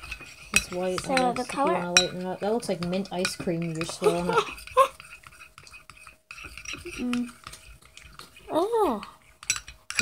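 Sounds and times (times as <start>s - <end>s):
spoon scraping glass bowl: 0.0s - 8.5s, 9.2s - 10.0s.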